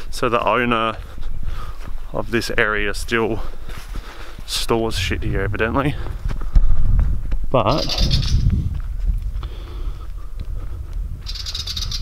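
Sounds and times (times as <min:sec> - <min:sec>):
footsteps on dirt and straw: 0:00.0 - 0:07.8, 0:08.4 - 0:11.3
wind buffeting microphone: 0:00.0 - 0:12.0.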